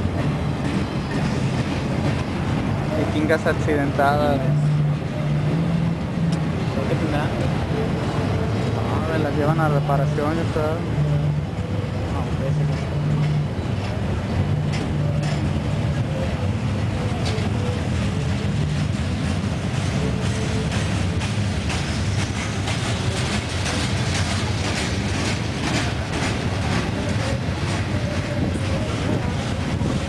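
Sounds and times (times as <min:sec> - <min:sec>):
steel wheels rumbling on rail: 0:00.0 - 0:30.0.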